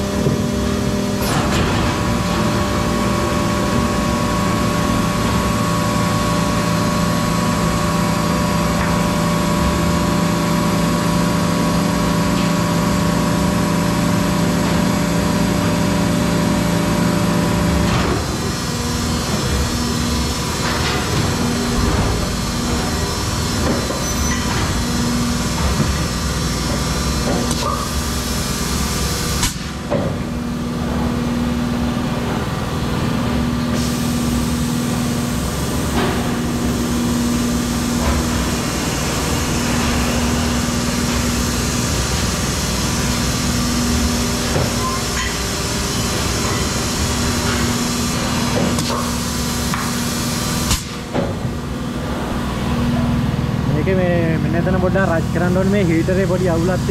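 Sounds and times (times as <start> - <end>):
machine hum: 0.0 - 56.9
machine knocks and clunks: 1.2 - 2.4.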